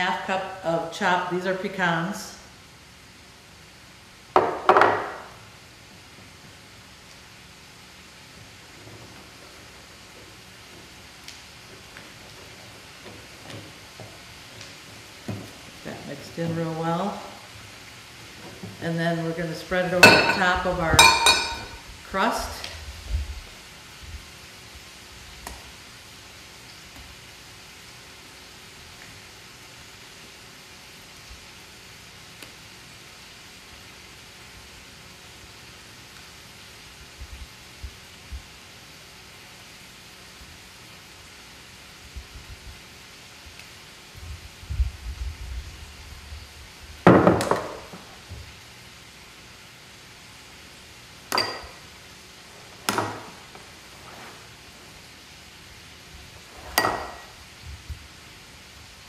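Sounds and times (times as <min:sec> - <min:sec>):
spatula clinking on glass bowl: 0:20.0 - 0:21.8.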